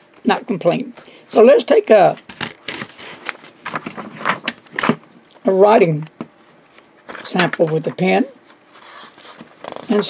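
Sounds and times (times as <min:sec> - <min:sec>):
notebook pages rustling: 0:02.2 - 0:05.0.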